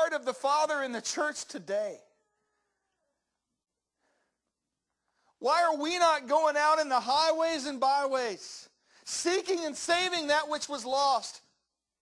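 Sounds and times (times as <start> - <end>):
man's voice: 0.0 - 2.1, 5.3 - 11.5.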